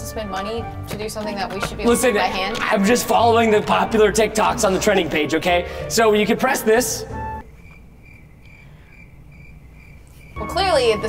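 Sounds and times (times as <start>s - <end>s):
cricket chirp sound effect: 7.4s - 11.0s.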